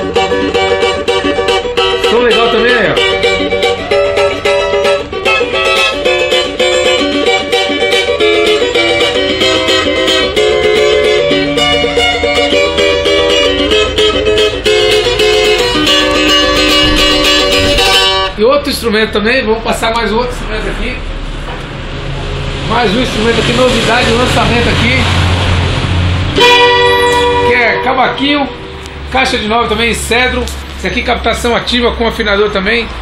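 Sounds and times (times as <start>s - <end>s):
cavaquinho strummed: 0.0s - 19.2s, 22.6s - 30.4s.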